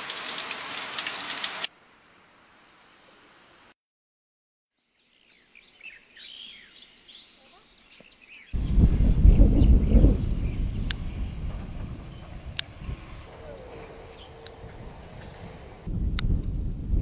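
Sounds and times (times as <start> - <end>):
small birds chirping: 4.8 - 15.8
low rushing noise on microphone: 8.6 - 17.0.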